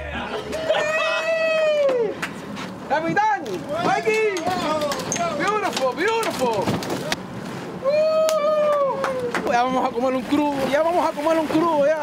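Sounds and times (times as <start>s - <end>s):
men shouting and whooping: 0.0s - 2.2s, 7.8s - 9.6s.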